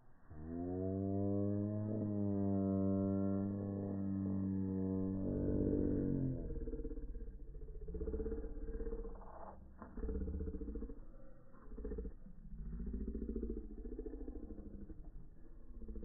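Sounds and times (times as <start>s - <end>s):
low drawn-out bending tones: 0.0s - 16.0s.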